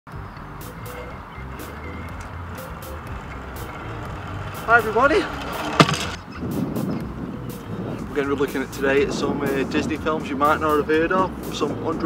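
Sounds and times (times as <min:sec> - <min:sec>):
music beat of sharp strokes: 0:00.1 - 0:05.3
zip line trolley rumbling on cable: 0:00.6 - 0:07.0.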